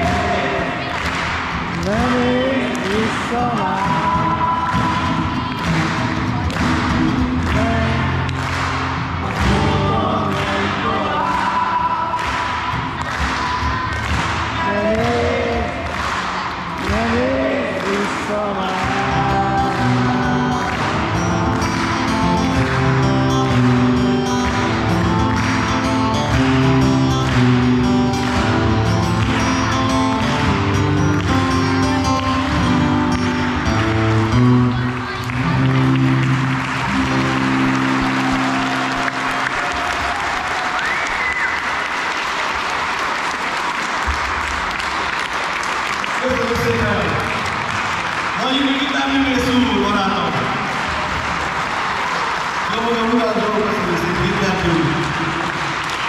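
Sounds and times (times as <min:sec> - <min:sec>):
acoustic guitar strumming: 0:00.0 - 0:39.6
audience applause: 0:00.0 - 0:56.0.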